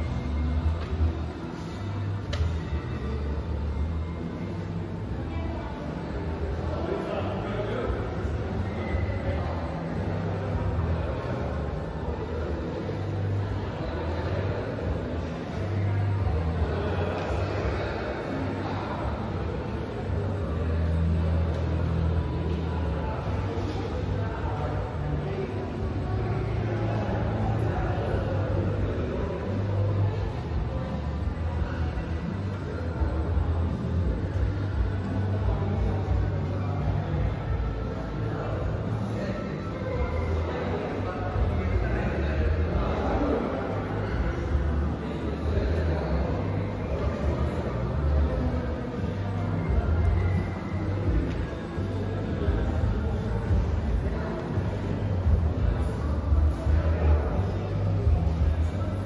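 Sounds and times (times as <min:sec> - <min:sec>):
background noise: 0:00.0 - 0:59.0
faint voices: 0:00.0 - 0:59.0.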